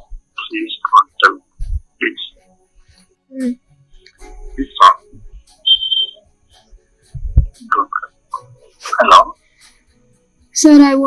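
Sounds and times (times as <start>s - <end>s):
muffled voice: 0.0s - 1.4s, 2.0s - 2.4s, 4.6s - 5.9s, 7.5s - 9.4s
short high beep: 5.6s - 6.2s.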